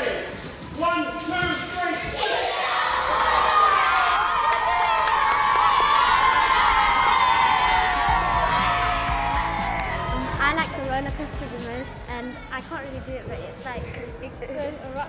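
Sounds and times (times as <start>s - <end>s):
children cheering and shouting: 2.2s - 10.8s
background music: 6.6s - 15.0s.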